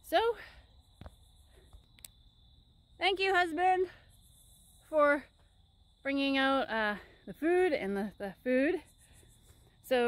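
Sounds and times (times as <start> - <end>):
crickets chirping: 0.0 - 10.0
faint clicks: 1.7 - 2.2.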